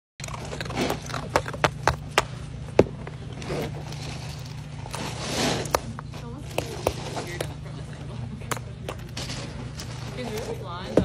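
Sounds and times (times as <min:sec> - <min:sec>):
steady low hum: 0:00.2 - 0:11.0
crunchy shuffle of crushed ice: 0:03.3 - 0:07.6, 0:08.9 - 0:10.8.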